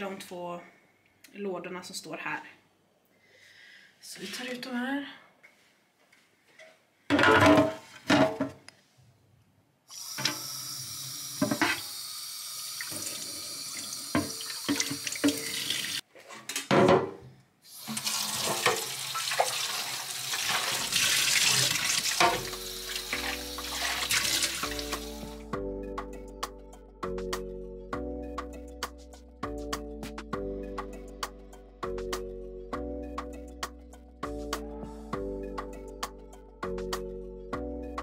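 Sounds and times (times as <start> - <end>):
tap water running into sink: 10.0 - 16.0, 17.8 - 25.3
dish brush scrubbing plastic: 17.9 - 25.2
music: 22.1 - 38.0.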